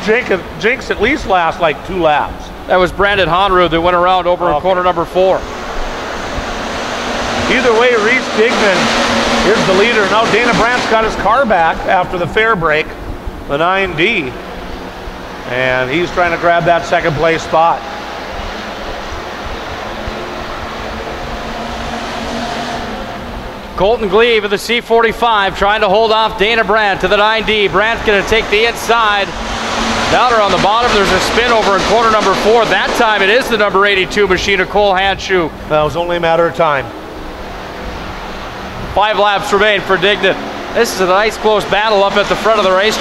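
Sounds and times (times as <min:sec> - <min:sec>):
race car engines: 0:00.0 - 0:43.0.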